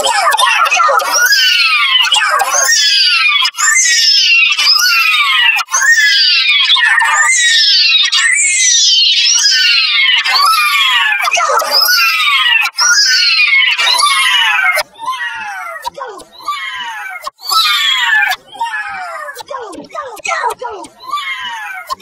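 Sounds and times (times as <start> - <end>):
pitch-shifted screechy voice cry: 0.0 - 22.0.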